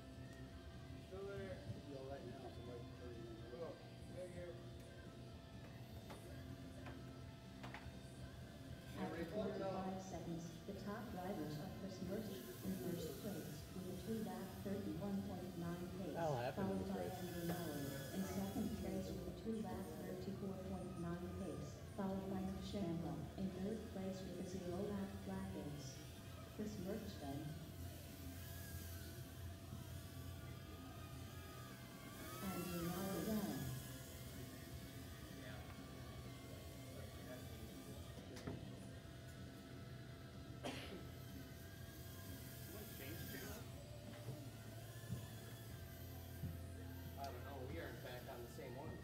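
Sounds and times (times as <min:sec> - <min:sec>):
faint music: 0:00.0 - 0:49.0.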